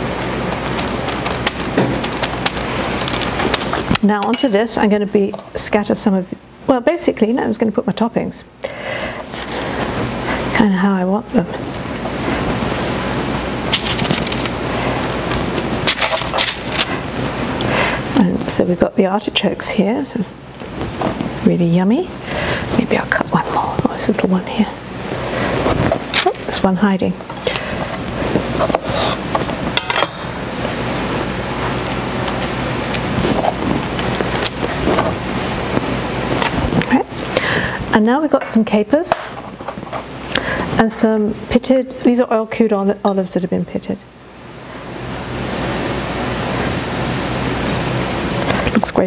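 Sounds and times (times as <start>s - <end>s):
steady rushing background noise: 0.0s - 4.0s, 11.6s - 18.2s, 24.6s - 38.0s.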